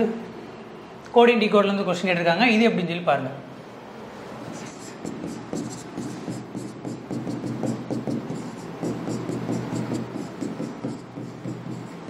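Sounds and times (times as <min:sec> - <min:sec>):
marker writing on whiteboard: 0:04.5 - 0:12.0.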